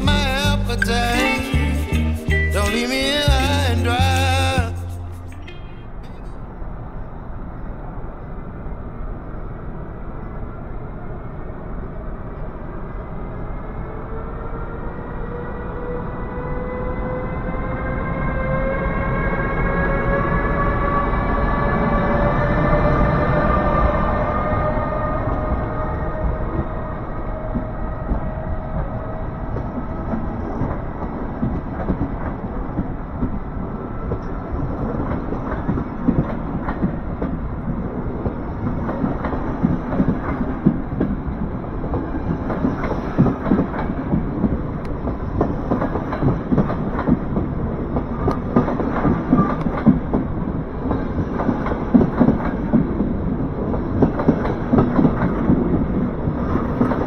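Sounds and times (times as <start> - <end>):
faint electric locomotive whine: 0.0 - 57.0
train wheels clattering over rail joints: 34.0 - 57.0.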